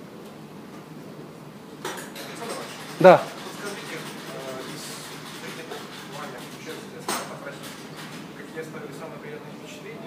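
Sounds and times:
dishes and cutlery clinking: 0:01.8 - 0:08.2.

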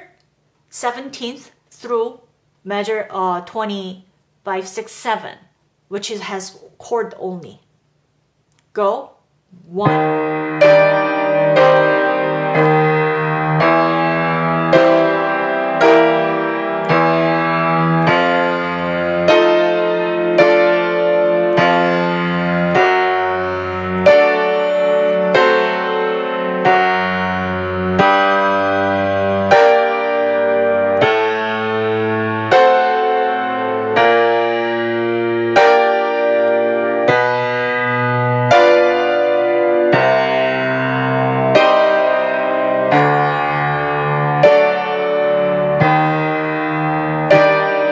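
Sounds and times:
piano playing chords: 0:09.8 - 0:47.9.

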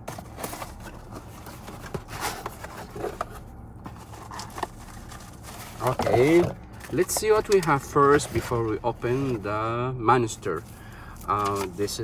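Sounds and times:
cardboard box scraping and rustling: 0:00.0 - 0:09.6.

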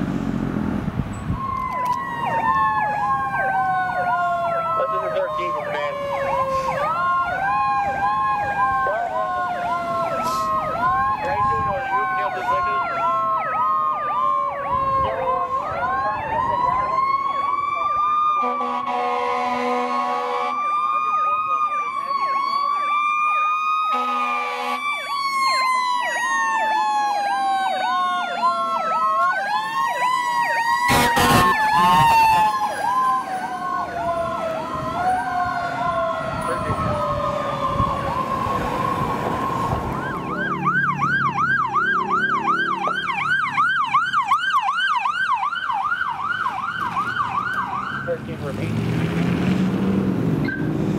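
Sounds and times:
high warbling siren: 0:01.1 - 0:48.2
electronic yelp siren: 0:01.1 - 0:48.4, 0:50.4 - 0:50.8
winding siren tone: 0:01.2 - 0:48.2
air horn blasts: 0:18.4 - 0:20.6, 0:23.9 - 0:24.8, 0:30.9 - 0:32.5.

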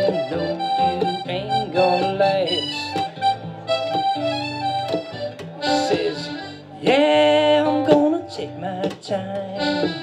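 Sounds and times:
harmonica melody: 0:00.0 - 0:07.7, 0:09.4 - 0:10.0
strummed acoustic guitar: 0:00.0 - 0:10.0
upright bass: 0:00.0 - 0:10.0.

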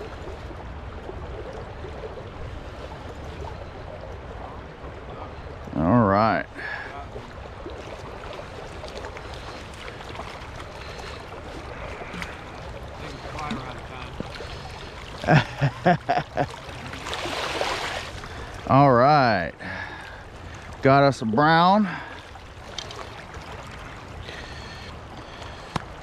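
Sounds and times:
stream rushing: 0:00.0 - 0:26.0.

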